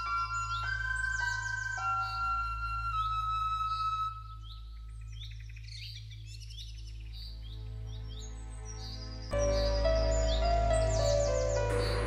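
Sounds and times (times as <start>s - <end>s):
bird chirps: 0.0s - 12.0s
soft steady music drone: 0.0s - 12.0s.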